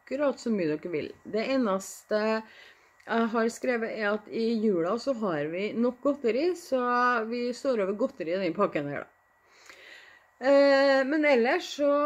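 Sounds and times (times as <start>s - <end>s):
woman speaking: 0.0s - 9.1s, 10.4s - 12.0s
faint breath: 2.4s - 3.0s, 9.4s - 10.4s.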